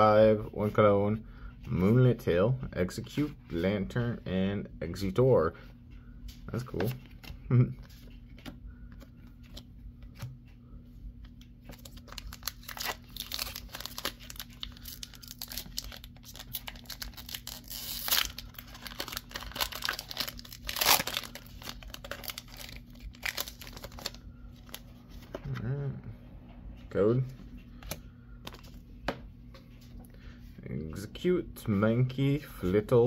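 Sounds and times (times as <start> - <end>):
foil wrapper crinkling and tearing: 11.7 - 24.8.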